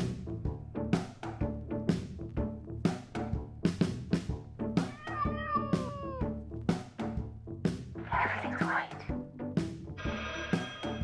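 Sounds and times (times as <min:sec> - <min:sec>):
music with pounding drum beat: 0:00.0 - 0:08.0
cat meowing: 0:04.8 - 0:06.4.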